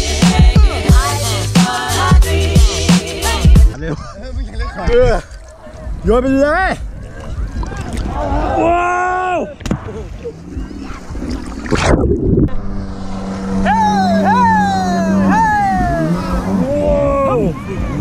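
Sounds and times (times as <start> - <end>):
water splashing: 4.9 - 18.0
jet ski engine revving: 12.5 - 18.0.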